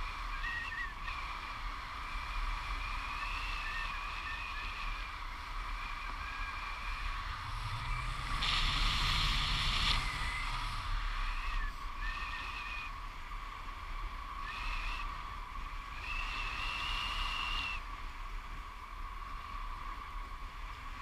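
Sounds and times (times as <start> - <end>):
steady high whine: 0.0 - 21.0
wind rushing over microphone: 0.0 - 21.0
high whistling tones: 0.1 - 1.4, 2.3 - 13.1, 14.3 - 17.9.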